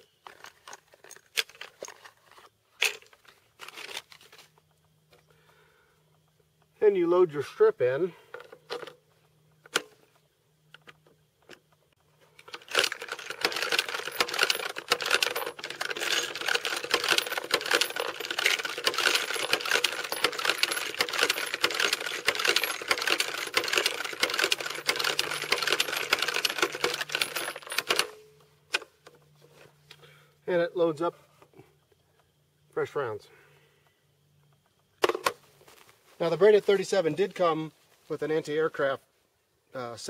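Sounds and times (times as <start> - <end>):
rapid metallic clicking and clinking: 12.5 - 28.2.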